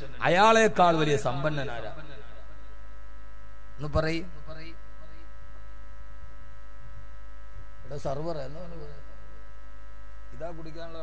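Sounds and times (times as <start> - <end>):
man speaking into a microphone: 0.0 - 2.4, 3.8 - 4.8
electrical mains hum: 0.0 - 11.0.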